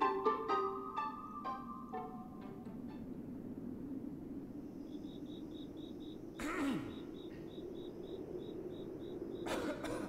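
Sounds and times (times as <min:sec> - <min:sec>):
cricket chirping: 0:02.8 - 0:10.0.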